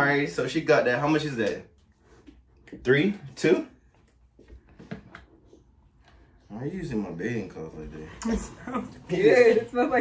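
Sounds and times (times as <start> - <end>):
faint taps and rustles of handling: 3.9 - 6.3.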